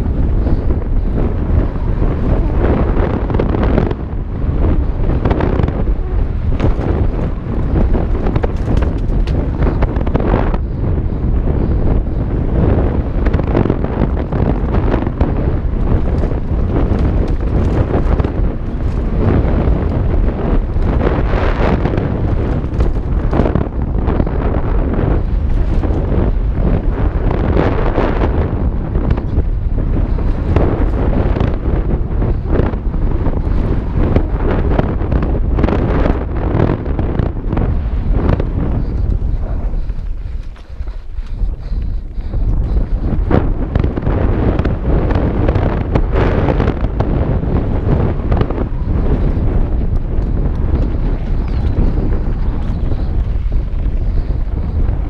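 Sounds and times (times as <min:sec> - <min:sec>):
bike tyre roar on dirt: 0:00.0 - 0:55.0
wind buffeting microphone: 0:00.0 - 0:55.0
bike knocks and rattles: 0:06.4 - 0:27.5.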